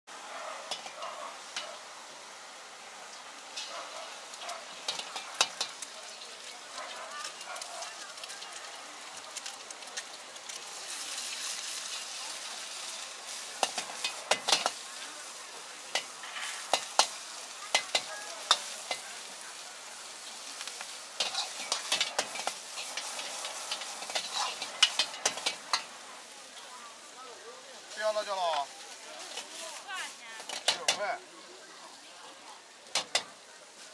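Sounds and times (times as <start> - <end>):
food sizzling in a wok: 0.1 - 33.9
metal ladle scraping wok: 0.6 - 1.9, 3.5 - 5.9, 9.4 - 26.0, 28.9 - 31.0.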